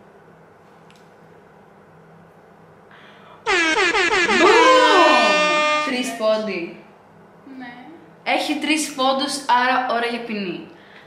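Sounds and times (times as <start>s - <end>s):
loud air horn: 3.5s - 6.2s.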